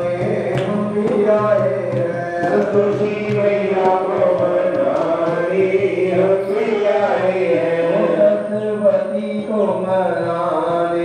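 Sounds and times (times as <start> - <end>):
person chanting devotional song: 0.0 - 11.0.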